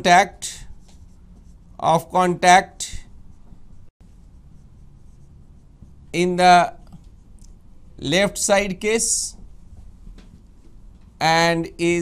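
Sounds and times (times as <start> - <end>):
man speaking: 0.0 - 0.7, 1.8 - 3.1, 6.2 - 6.8, 8.0 - 9.4, 11.2 - 12.0
marker writing on whiteboard: 0.0 - 7.8, 9.3 - 11.2
low steady hum: 0.0 - 12.0.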